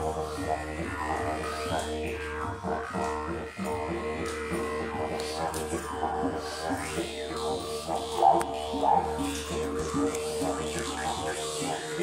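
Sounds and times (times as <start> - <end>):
didgeridoo droning: 0.0 - 12.0.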